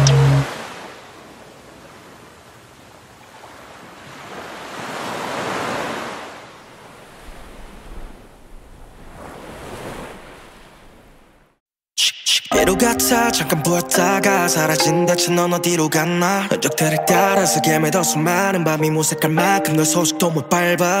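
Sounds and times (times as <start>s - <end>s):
waves washing in and back: 0.0s - 11.6s, 12.6s - 21.0s.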